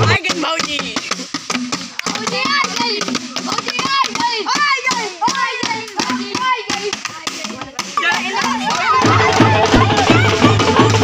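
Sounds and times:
boys calling out: 0.0s - 11.0s
drumming on plastic bottles: 0.0s - 11.0s
hands clapping: 0.9s - 11.0s.

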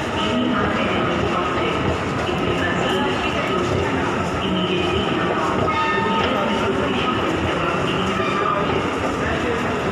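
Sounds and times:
metro station noise: 0.0s - 9.9s.

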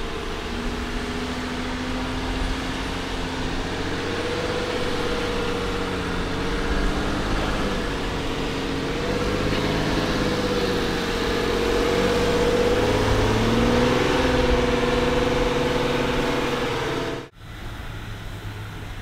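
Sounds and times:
car engine under load: 0.0s - 19.0s
steady quieter engine: 0.0s - 19.0s.

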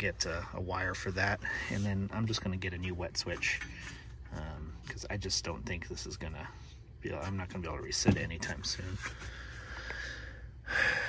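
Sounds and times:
man breathing out: 9.1s - 11.0s.

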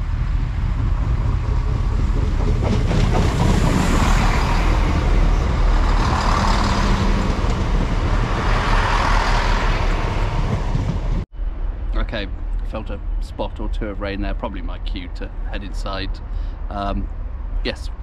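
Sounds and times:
diesel train passing: 0.0s - 18.0s.

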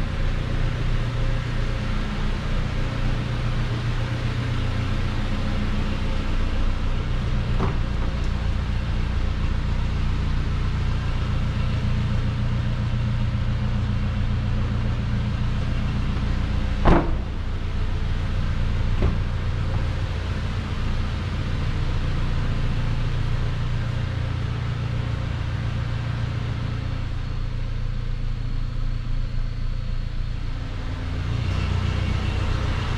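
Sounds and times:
car engine idling: 0.0s - 31.4s
sharp knock: 16.8s - 17.4s.

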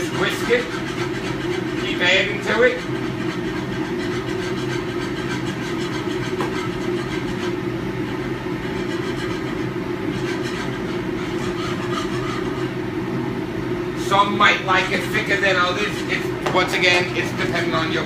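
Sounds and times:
exhaust hood fan rumbling: 0.0s - 18.0s
whisk scraping: 0.0s - 18.0s.

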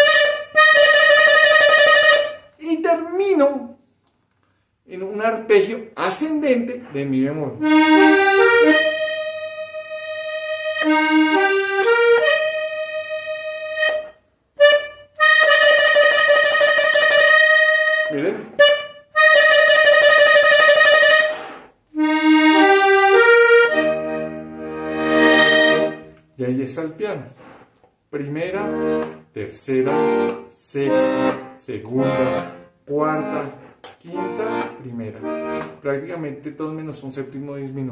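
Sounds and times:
button accordion playing: 0.0s - 2.6s, 7.6s - 26.2s, 28.5s - 35.8s.

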